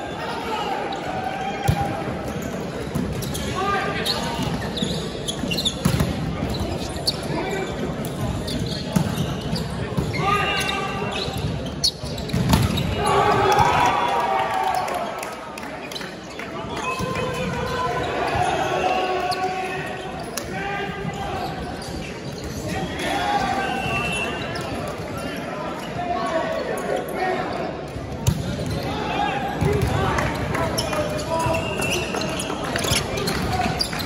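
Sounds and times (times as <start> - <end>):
players calling and chattering: 0.0 - 34.0
volleyball bouncing on wooden court: 5.4 - 6.8.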